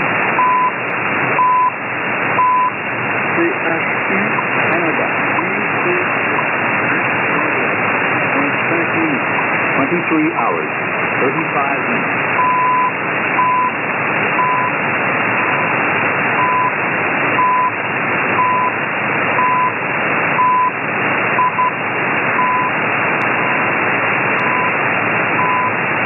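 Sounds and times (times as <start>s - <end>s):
shortwave static: 0.0s - 26.0s
short time signal beeps: 1.4s - 1.8s, 2.4s - 2.8s, 12.4s - 13.8s, 20.4s - 20.8s, 24.4s - 24.8s.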